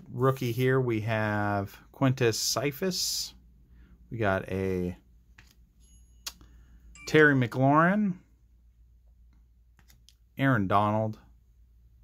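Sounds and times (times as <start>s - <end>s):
cards sliding with faint ticks: 9.3s - 10.2s.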